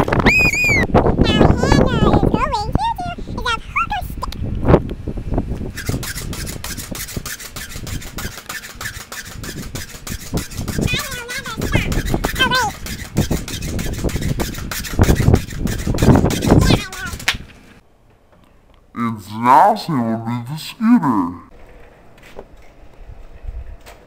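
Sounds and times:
pogo stick bouncing on concrete: 0:05.6 - 0:17.6.

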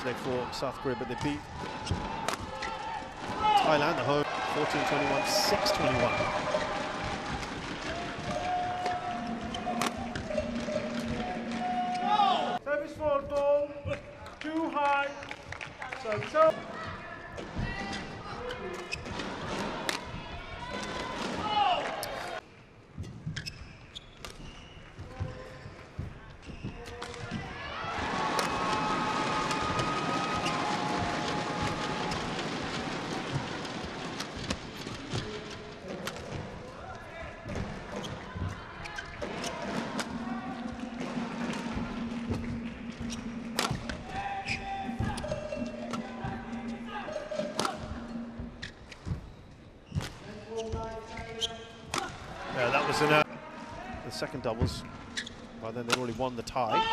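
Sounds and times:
crowd voices: 0:00.0 - 0:12.6, 0:27.1 - 0:49.0
racket striking shuttlecock: 0:09.7 - 0:11.1, 0:42.4 - 0:44.1, 0:47.4 - 0:48.0.

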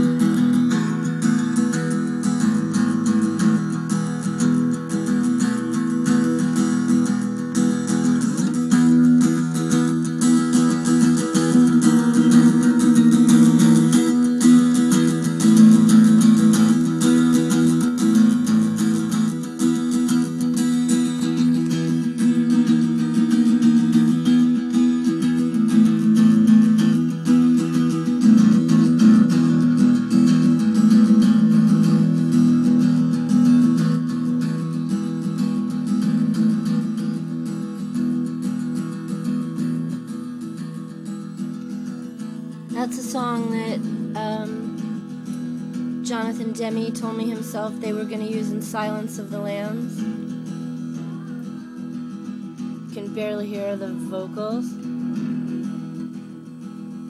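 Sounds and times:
strummed acoustic guitar: 0:00.0 - 0:57.0.

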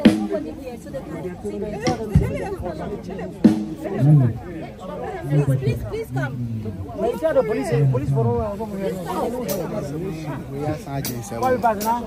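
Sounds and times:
crowd chatter: 0:00.0 - 0:12.0
people talking close by: 0:00.0 - 0:12.0.

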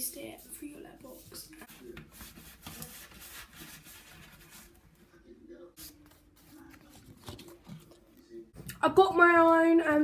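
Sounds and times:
card scraping letterbox brush: 0:01.1 - 0:04.8.

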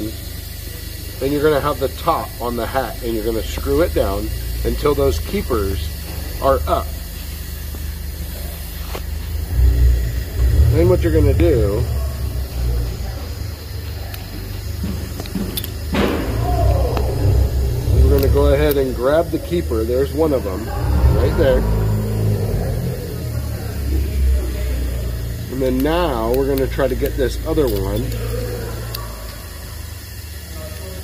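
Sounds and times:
low machine hum: 0:00.0 - 0:31.0
low mechanical rumble: 0:00.0 - 0:31.0
handling noise: 0:12.0 - 0:18.9.

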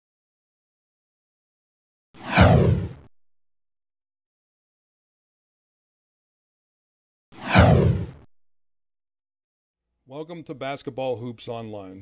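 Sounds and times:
fireball whoosh: 0:02.2 - 0:03.0, 0:07.4 - 0:08.2
low boom: 0:07.5 - 0:08.3.

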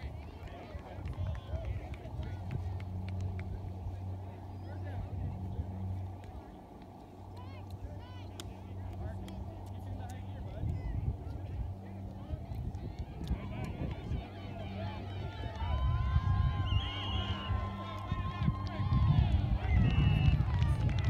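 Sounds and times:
low steady hum: 0:00.0 - 0:21.0
distant voices and calls: 0:14.0 - 0:18.4.

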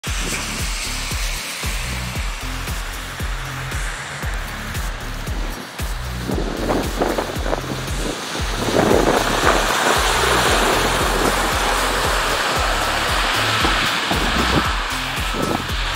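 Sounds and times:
background music with steady beat: 0:00.0 - 0:15.9
snowplow rushing noise: 0:00.0 - 0:15.9.

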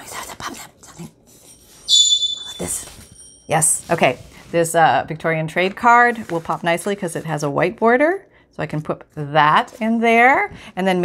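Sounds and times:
high-pitched squeal: 0:01.9 - 0:03.3
paper handling: 0:05.6 - 0:07.4.

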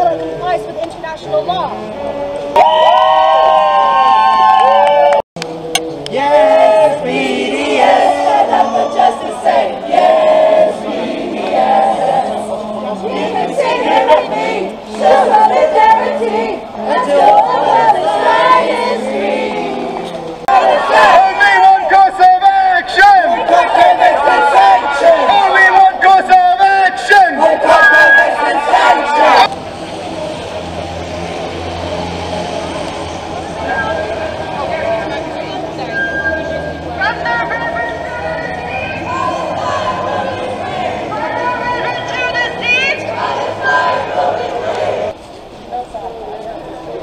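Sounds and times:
street crowd talking: 0:00.0 - 0:47.0
group singing: 0:05.6 - 0:22.1, 0:23.0 - 0:26.2, 0:27.0 - 0:29.5, 0:38.3 - 0:45.2
low engine drone: 0:29.5 - 0:37.0.

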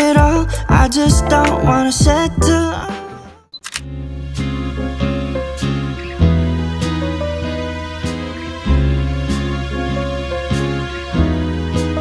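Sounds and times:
hip-hop song: 0:00.0 - 0:03.5
quick clicks: 0:03.6 - 0:03.8.

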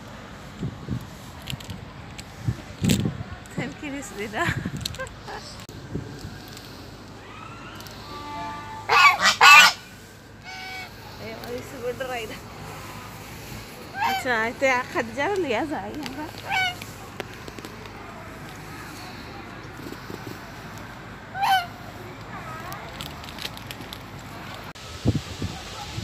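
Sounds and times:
goose honking: 0:08.0 - 0:11.1, 0:13.9 - 0:14.3, 0:16.4 - 0:16.9, 0:21.3 - 0:21.9.

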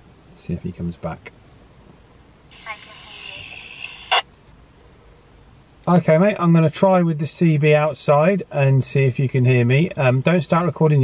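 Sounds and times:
radio noise burst: 0:02.5 - 0:04.2
voice over handheld radio: 0:02.6 - 0:04.2.

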